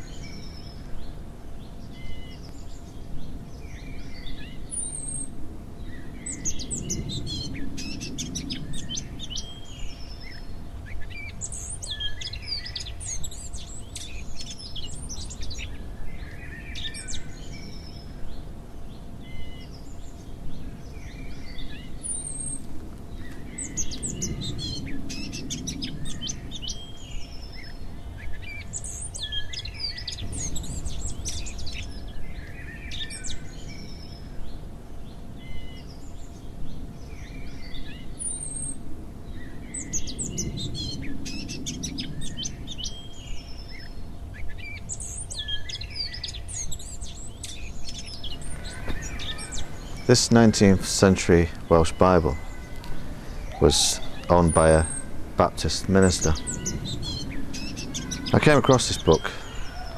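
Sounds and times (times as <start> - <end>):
songbirds singing: 0.0 - 59.9.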